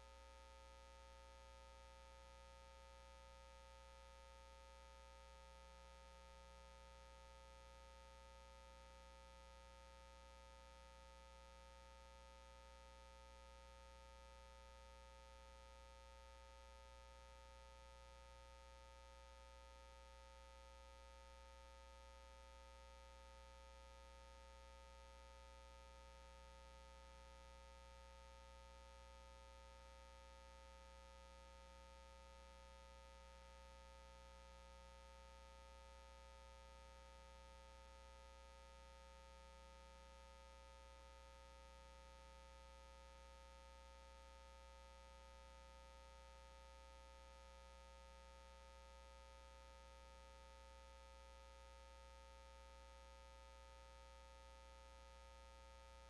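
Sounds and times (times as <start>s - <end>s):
faint electrical hum: 0.0s - 56.0s.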